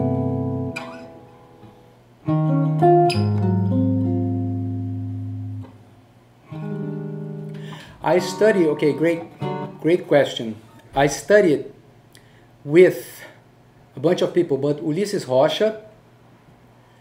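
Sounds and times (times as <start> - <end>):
jazz guitar chords ringing: 0.0 - 11.2.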